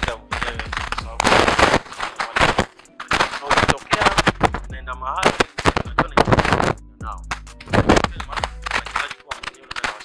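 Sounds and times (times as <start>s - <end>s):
man talking into microphone: 0.0s - 10.0s.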